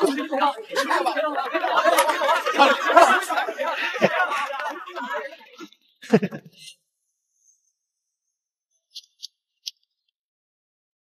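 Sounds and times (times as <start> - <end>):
faint high-pitched ticks: 8.9 - 10.2.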